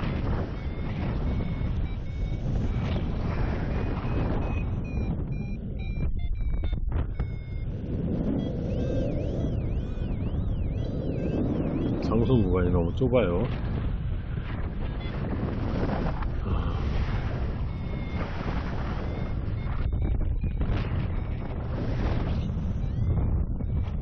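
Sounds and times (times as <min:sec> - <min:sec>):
warbling siren-like tone: 0:00.0 - 0:13.4, 0:14.5 - 0:24.0
wind rushing over microphone: 0:00.0 - 0:24.0
short electronic beeps: 0:00.2 - 0:13.4, 0:14.8 - 0:15.4, 0:16.3 - 0:24.0.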